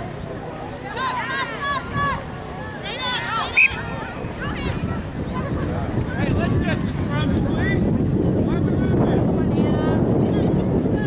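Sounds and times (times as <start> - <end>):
wind buffeting microphone: 1.6 - 11.0.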